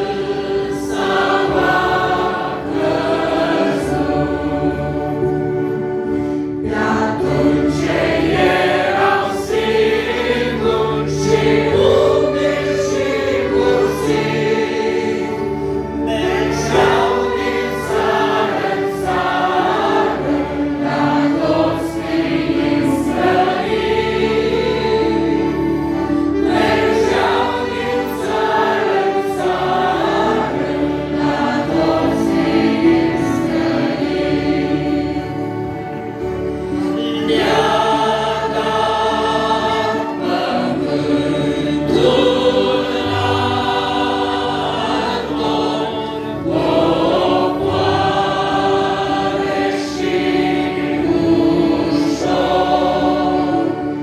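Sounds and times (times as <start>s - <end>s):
accordions: 0.0s - 54.0s
congregation and choir singing a hymn: 0.0s - 54.0s.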